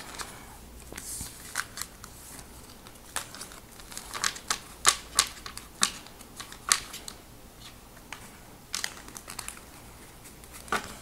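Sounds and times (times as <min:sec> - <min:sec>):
cards being shuffled: 0:00.0 - 0:11.0.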